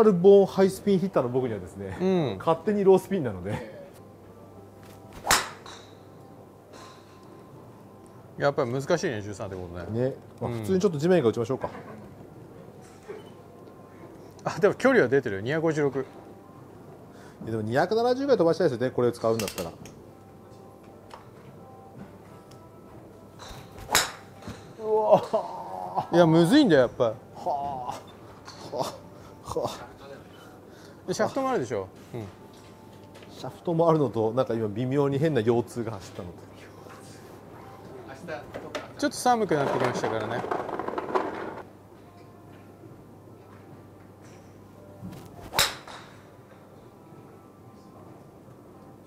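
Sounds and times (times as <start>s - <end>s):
golf club swish: 4.8s - 5.6s, 23.5s - 24.3s, 45.0s - 46.0s
golf club striking ball: 5.2s - 6.0s, 23.4s - 24.7s, 45.4s - 46.2s.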